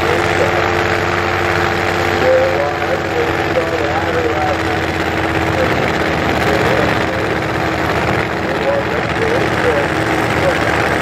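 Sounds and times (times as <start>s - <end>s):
people's voices: 0.0s - 1.5s, 2.1s - 11.0s
race car engine idling: 0.0s - 11.0s.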